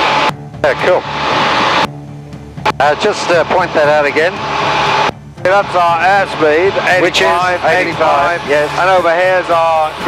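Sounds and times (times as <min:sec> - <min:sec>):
aircraft engine and airflow rush: 0:00.0 - 0:10.0
aircraft engine drone: 0:00.0 - 0:10.0.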